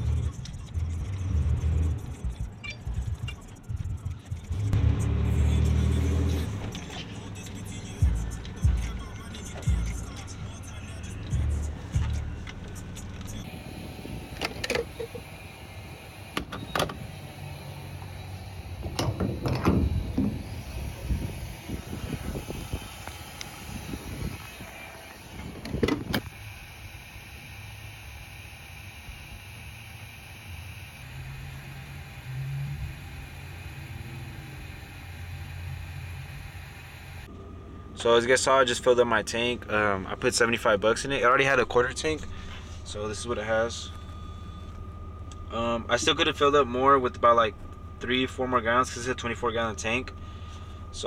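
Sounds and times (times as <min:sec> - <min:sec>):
steady low hum: 0:06.5 - 0:51.0
sharp clunks and knocks: 0:18.8 - 0:20.4.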